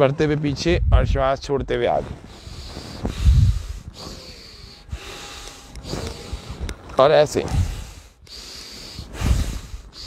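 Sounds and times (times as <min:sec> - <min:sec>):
man breathing deeply: 0:02.2 - 0:10.0.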